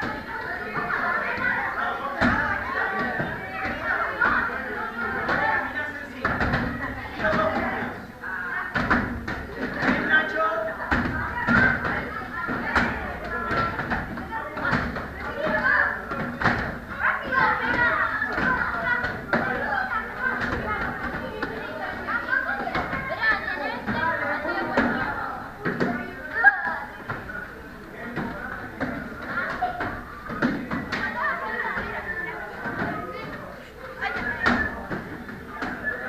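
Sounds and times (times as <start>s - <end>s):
children talking and calling out: 0.0s - 36.0s.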